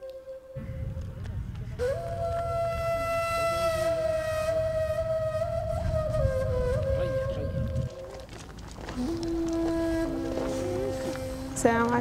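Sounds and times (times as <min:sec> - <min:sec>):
flute-like wind instrument note: 0:01.8 - 0:08.3, 0:08.9 - 0:11.6.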